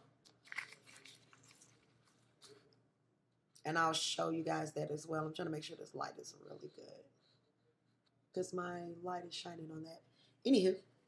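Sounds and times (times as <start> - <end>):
paper rustling: 0.3 - 2.7.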